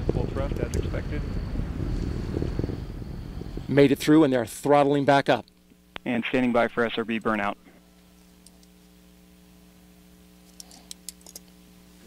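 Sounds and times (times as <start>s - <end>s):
faint electrical hum: 0.0s - 12.0s
small sharp clicks: 10.5s - 11.6s.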